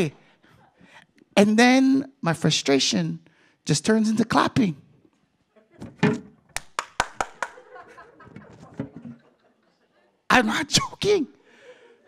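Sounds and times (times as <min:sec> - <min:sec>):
hands clapping sharply: 0:06.5 - 0:07.7.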